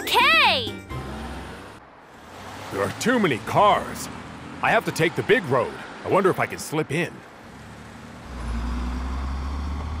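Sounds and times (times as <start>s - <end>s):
truck engine rumbling: 0.0s - 10.0s.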